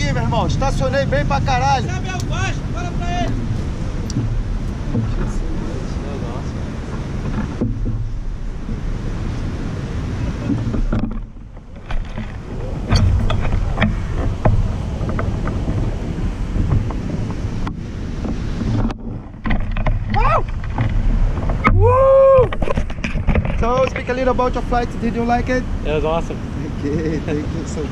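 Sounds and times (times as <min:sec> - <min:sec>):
knocks and rattles of glider frame: 0:00.0 - 0:27.9
wind buffeting microphone: 0:00.0 - 0:27.9.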